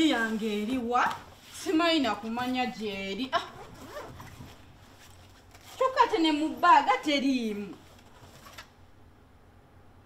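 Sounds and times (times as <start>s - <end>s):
person speaking: 0.0s - 3.6s, 5.7s - 7.9s
faint low room hum: 0.0s - 10.0s.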